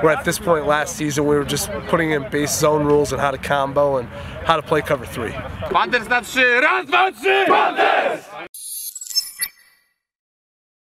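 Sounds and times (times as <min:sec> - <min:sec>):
team shouting a chant: 0:06.1 - 0:08.5.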